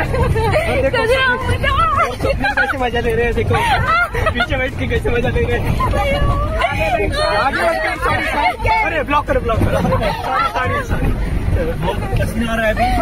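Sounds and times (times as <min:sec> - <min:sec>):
engine and road rumble: 0:00.0 - 0:13.0
many voices talking: 0:00.0 - 0:13.0.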